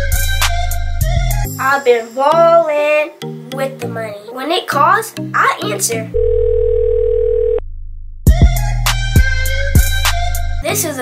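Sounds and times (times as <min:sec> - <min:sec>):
telephone dial tone: 0:06.2 - 0:07.6
low bass beat: 0:07.6 - 0:10.6.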